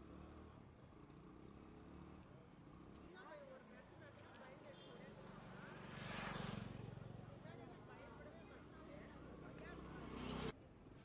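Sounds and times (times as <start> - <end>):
motor vehicle passing by: 4.9 - 10.6.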